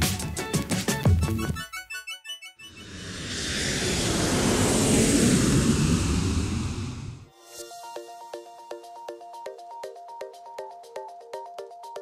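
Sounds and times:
rushing rumbling pass-by effect: 2.7 - 7.3.

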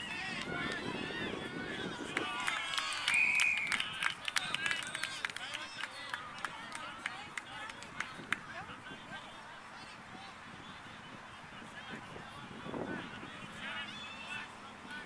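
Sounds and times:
voices calling out: 0.0 - 15.0.

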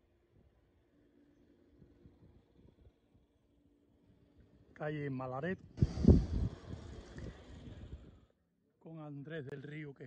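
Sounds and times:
wind buffeting microphone: 5.6 - 8.3.

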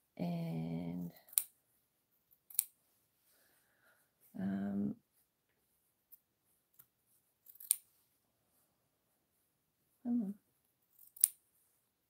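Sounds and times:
scissors snipping fabric: 7.4 - 7.9, 11.0 - 11.4.

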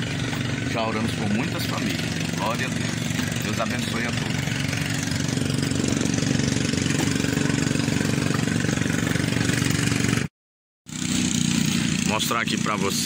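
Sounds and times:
small boat motor running: 0.0 - 10.3, 10.9 - 13.0.

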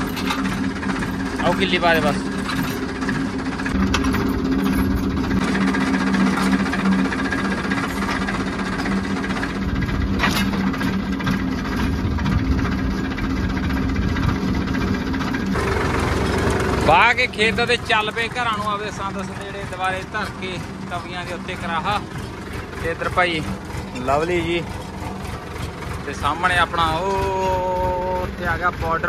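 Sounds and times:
tractor engine running: 0.0 - 29.0.

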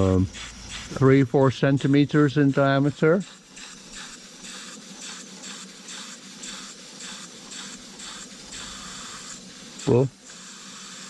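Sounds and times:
steam engine exhaust chuffing: 0.0 - 11.0.

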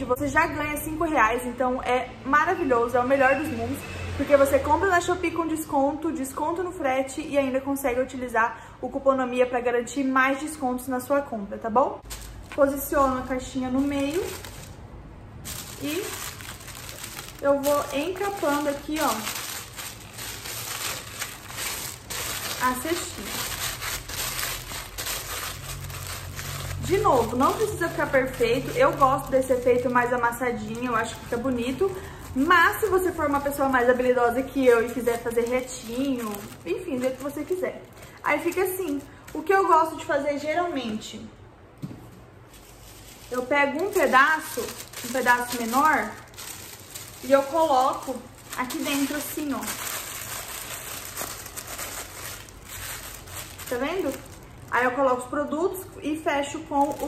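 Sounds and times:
tissue paper crinkling: 12.0 - 39.8, 42.4 - 55.3, 56.6 - 57.0.

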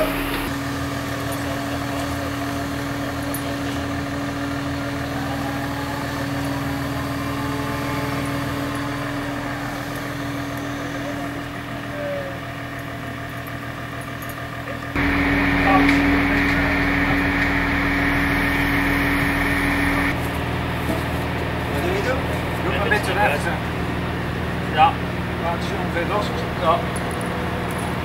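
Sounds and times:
crane engine humming: 0.0 - 28.0.

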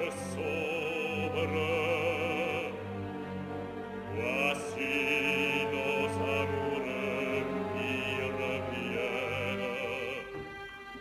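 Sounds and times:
man singing opera with vibrato: 0.0 - 2.8, 4.2 - 10.6
orchestral accompaniment: 0.0 - 11.0.

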